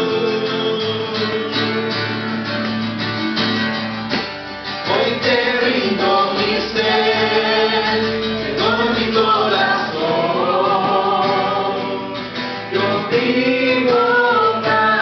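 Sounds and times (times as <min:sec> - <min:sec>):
acoustic guitar strumming: 0:00.0 - 0:15.0
people singing: 0:00.0 - 0:15.0.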